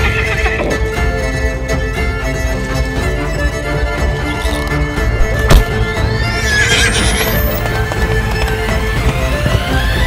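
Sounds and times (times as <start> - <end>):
horse whinnying: 0.0 - 1.2, 5.9 - 7.9
background music: 0.0 - 10.0.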